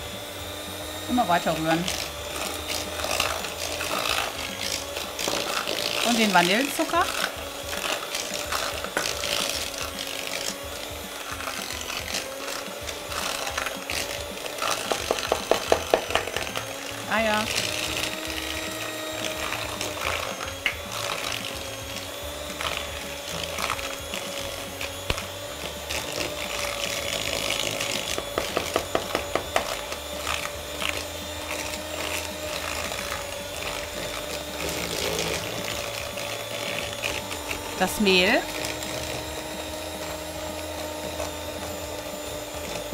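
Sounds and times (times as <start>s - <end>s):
electric hand mixer running: 0.0s - 42.9s.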